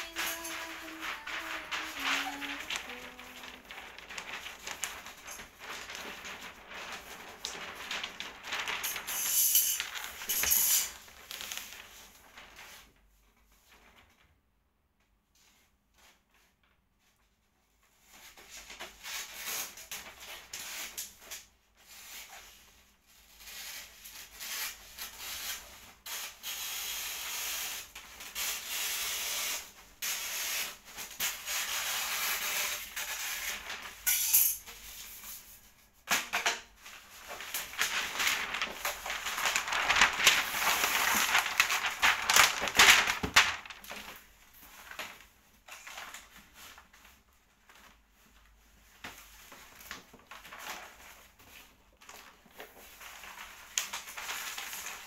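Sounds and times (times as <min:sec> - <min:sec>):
wrapping paper tearing: 0:00.0 - 0:12.8, 0:23.2 - 0:34.0, 0:36.8 - 0:46.4, 0:52.0 - 0:55.0.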